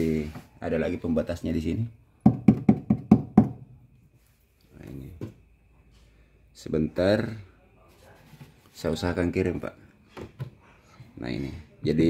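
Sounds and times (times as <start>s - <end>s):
knuckles knocking on wood: 2.2s - 3.7s.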